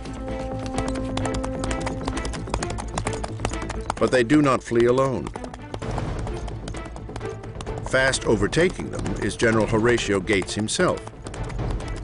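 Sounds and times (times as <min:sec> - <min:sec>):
galloping horse hoofbeats: 0:00.0 - 0:12.0.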